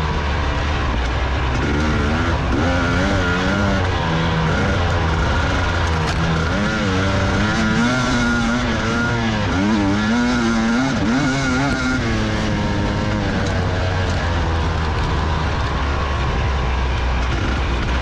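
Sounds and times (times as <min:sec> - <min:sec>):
dirt bike engine revving: 0:00.0 - 0:18.0.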